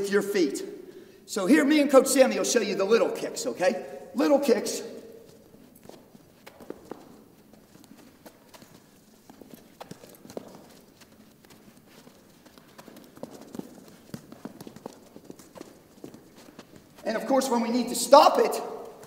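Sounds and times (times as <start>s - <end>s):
soft taps of shoes on balls: 5.2s - 17.1s.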